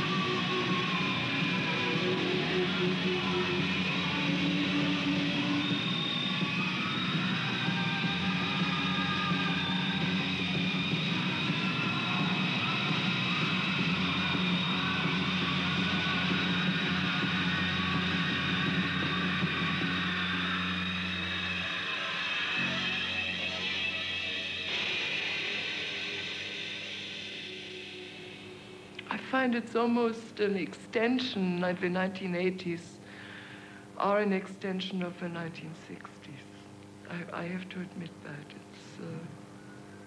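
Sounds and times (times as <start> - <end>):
rock band playing live: 0.0 - 28.4
electric guitars: 0.0 - 29.2.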